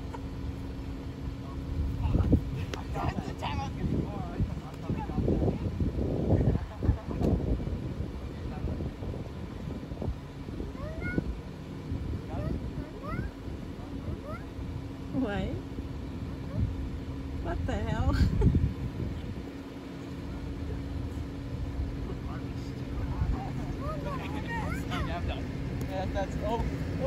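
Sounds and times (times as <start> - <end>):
distant people calling and laughing: 0.0 - 27.0
idling car hum: 0.0 - 27.0.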